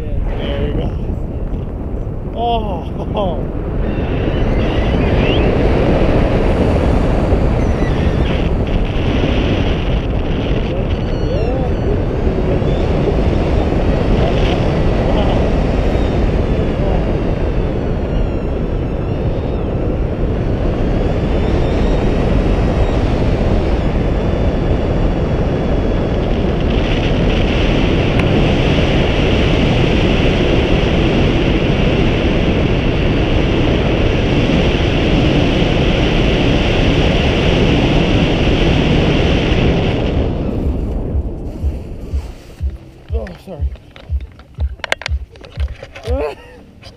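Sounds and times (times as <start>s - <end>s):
wind rushing over microphone: 0.0s - 46.9s.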